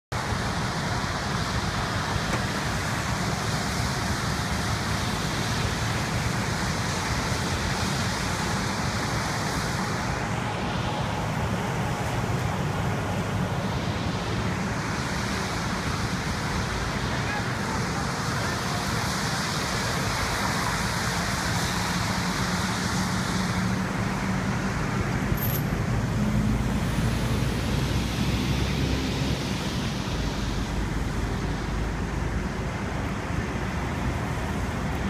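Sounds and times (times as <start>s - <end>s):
heavy engine rumbling: 0.1s - 35.0s
highway traffic passing: 0.1s - 35.0s.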